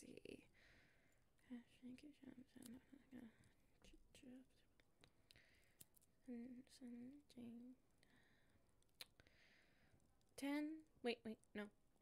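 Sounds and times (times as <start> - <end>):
woman whispering: 1.4 - 4.7, 6.2 - 7.8.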